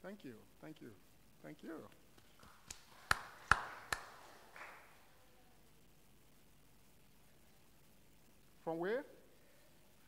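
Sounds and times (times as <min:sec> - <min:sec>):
hand claps: 0:02.1 - 0:05.1.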